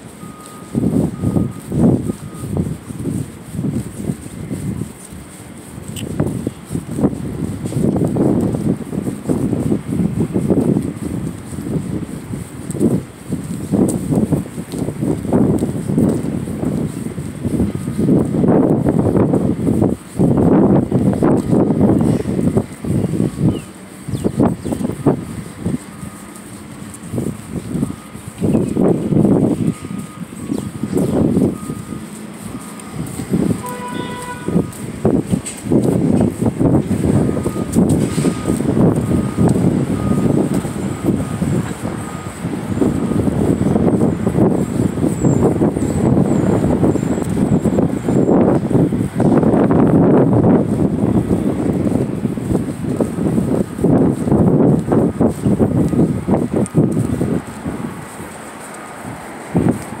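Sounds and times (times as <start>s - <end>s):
loud uneven outdoor rumbling: 0.0s - 60.0s
faint high beeping: 24.3s - 34.8s.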